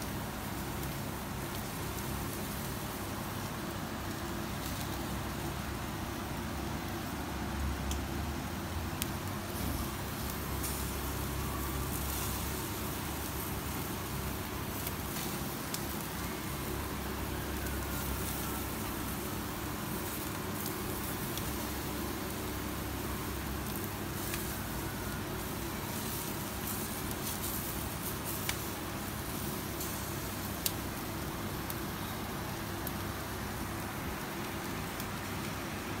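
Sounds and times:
chicken sizzling: 0.0s - 36.0s
gas grill burners hissing: 0.0s - 36.0s.

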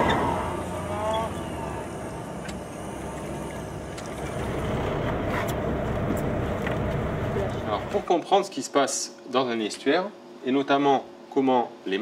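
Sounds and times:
boat engine running: 0.0s - 8.1s.

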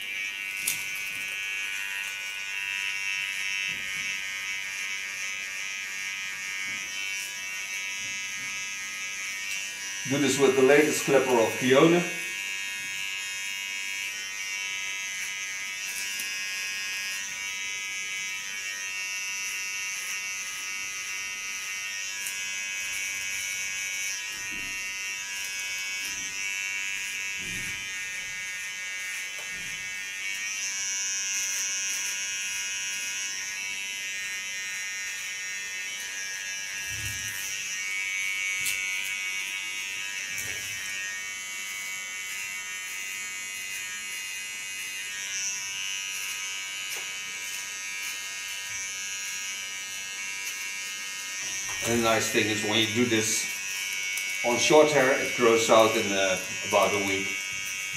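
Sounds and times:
hair trimmer buzzing: 0.0s - 57.9s.

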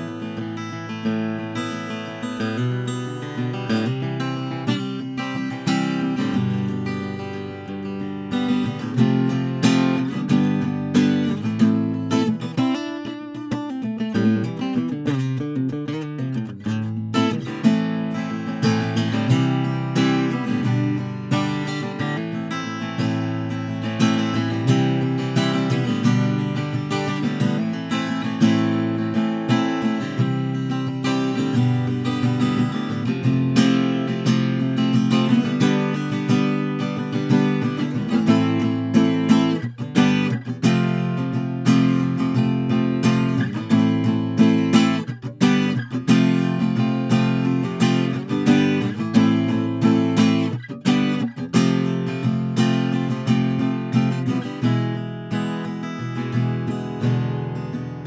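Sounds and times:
acoustic guitar strummed in chords: 0.0s - 58.0s.

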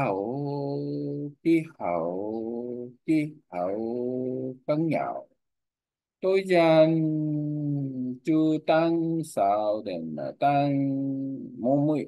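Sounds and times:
man reading aloud slowly: 0.0s - 5.6s, 6.2s - 12.0s.

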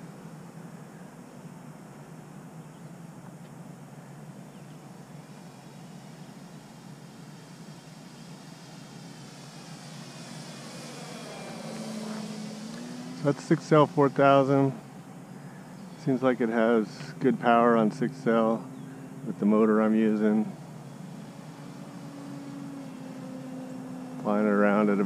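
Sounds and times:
model plane electric motor droning: 4.5s - 16.2s, 18.4s - 25.0s.

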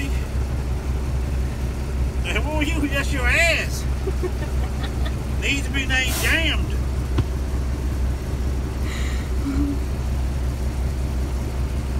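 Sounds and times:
truck engine idling: 0.0s - 11.9s.

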